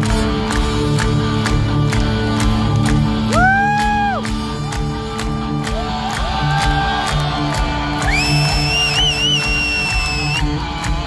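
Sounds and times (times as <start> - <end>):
distorted guitars: 0.0 - 11.0.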